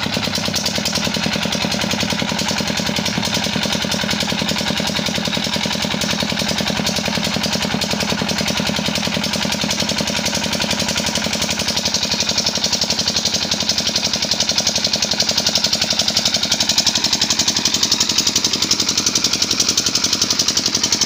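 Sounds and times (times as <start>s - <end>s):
diesel engine running: 0.0s - 21.0s.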